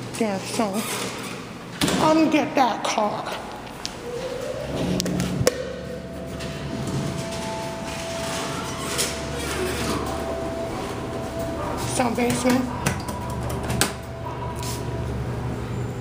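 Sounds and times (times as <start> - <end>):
elevator mechanical whine: 3.6 - 16.0
low rumble: 3.9 - 8.6.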